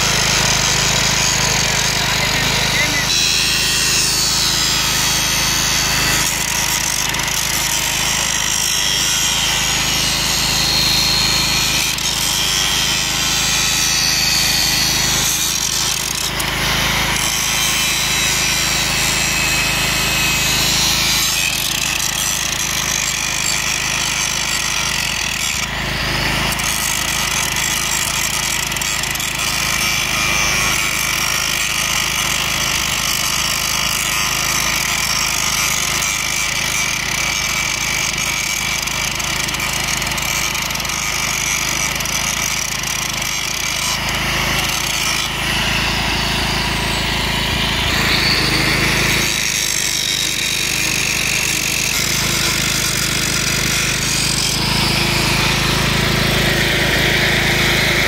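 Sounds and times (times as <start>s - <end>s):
angle grinder grinding steel: 0.0s - 58.0s.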